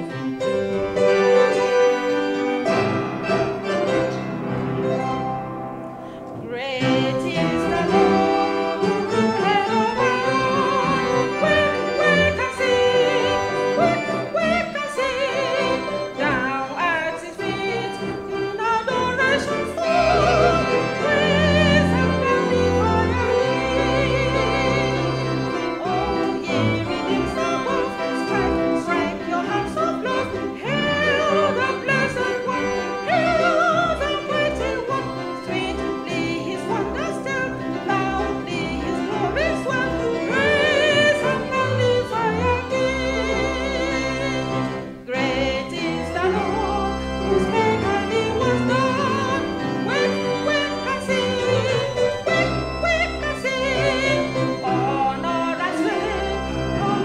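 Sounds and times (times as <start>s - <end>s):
organ playing hymn chords: 0.0s - 57.0s
piano accompaniment: 0.0s - 57.0s.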